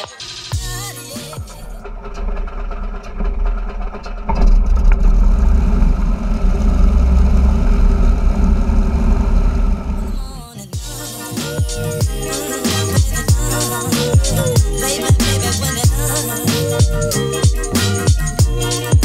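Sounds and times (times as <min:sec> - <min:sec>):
aircraft engine cranking: 0:00.8 - 0:10.4
aircraft engine droning: 0:01.8 - 0:10.2
background music: 0:10.1 - 0:19.0.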